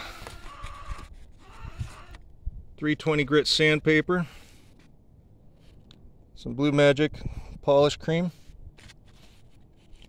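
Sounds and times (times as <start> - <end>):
light rustling of sandpaper and rag: 8.8 - 10.0.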